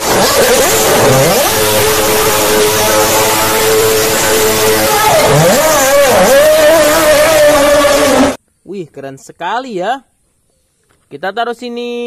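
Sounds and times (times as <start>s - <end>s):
racing car engine screaming: 0.0s - 8.4s.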